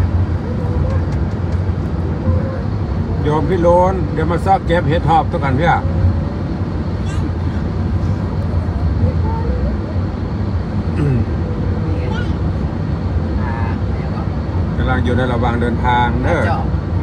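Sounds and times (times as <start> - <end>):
road and engine rumble: 0.0 - 17.0.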